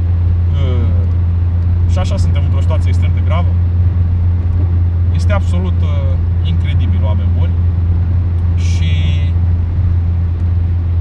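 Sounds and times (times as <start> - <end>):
car driving heard from inside: 0.0 - 11.0.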